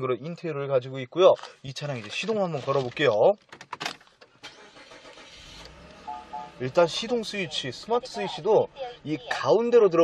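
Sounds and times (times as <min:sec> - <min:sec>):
car engine starting and running: 0:03.6 - 0:10.0.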